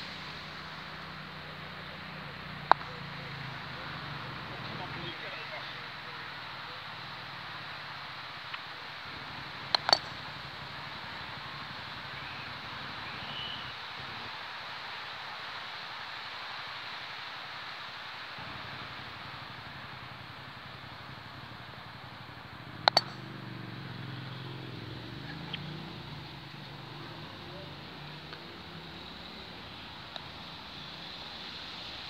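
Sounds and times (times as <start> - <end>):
steady outdoor hiss: 0.0 - 32.0
croquet mallet striking ball: 9.7 - 10.2, 22.8 - 23.2.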